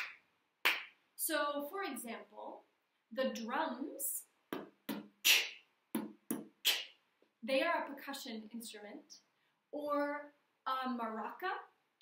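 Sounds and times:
woman beatboxing: 4.9 - 5.6, 6.3 - 6.9.

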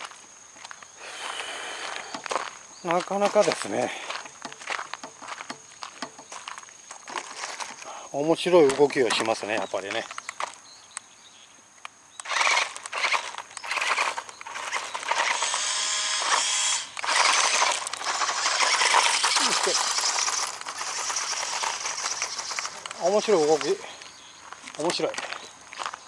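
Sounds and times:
wheels on gravel: 0.0 - 10.5, 12.2 - 26.0
toy car motor whirring: 12.2 - 23.8.

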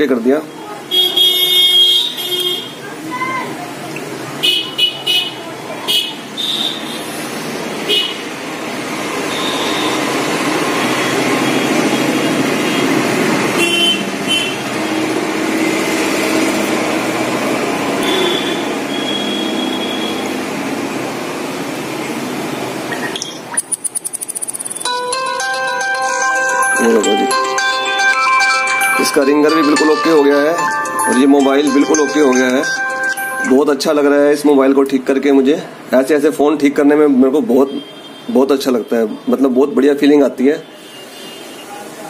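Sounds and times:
road traffic noise: 0.0 - 42.0
vehicle horns: 0.8 - 2.8, 4.4 - 7.2, 7.8 - 8.4, 9.2 - 15.2, 17.9 - 20.4, 40.6 - 41.8
short high beeps: 22.9 - 25.1.

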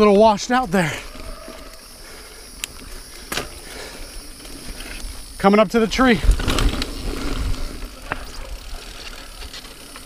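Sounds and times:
bike tyres rolling on dirt: 0.0 - 10.0
sharp clicks from bike: 2.6 - 5.1, 6.0 - 10.0.

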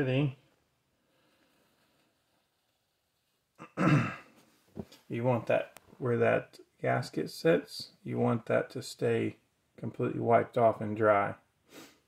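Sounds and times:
man clearing throat: 3.6 - 4.4.

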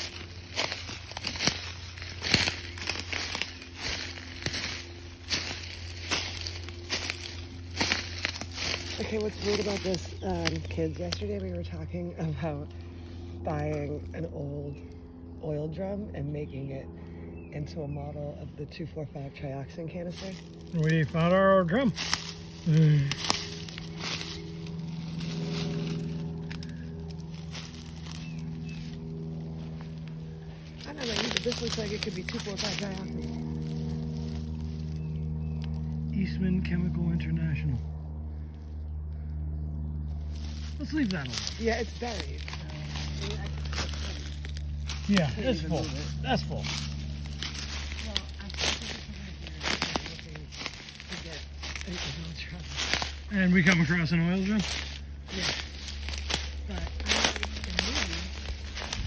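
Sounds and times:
footsteps crunching dry leaves: 0.0 - 15.5, 19.2 - 59.0
low hum: 0.0 - 59.0.

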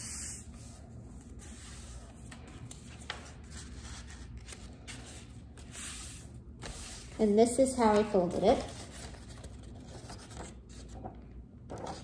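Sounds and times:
paper rustling and rubbing: 8.5 - 11.1.

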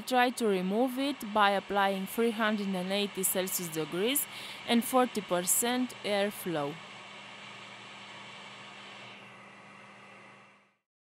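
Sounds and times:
hot air station hissing: 0.0 - 10.2.

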